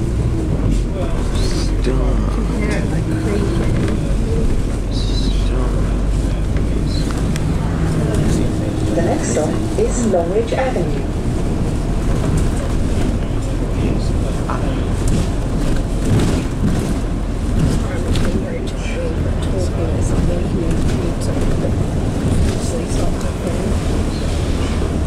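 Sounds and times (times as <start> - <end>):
bus engine drone: 0.0 - 25.0
road noise: 0.0 - 25.0
faint voices: 0.4 - 15.3.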